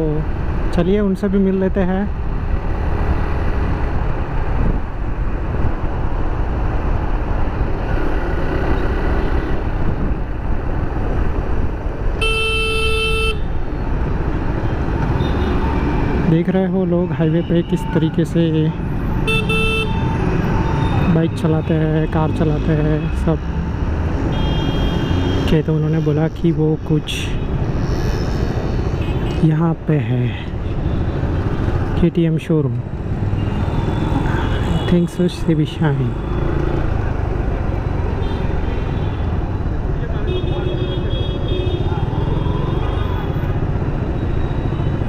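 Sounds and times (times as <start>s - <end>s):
wind and motorcycle road noise: 0.0s - 45.0s
vehicle horn honk: 12.2s - 13.5s, 19.3s - 20.0s.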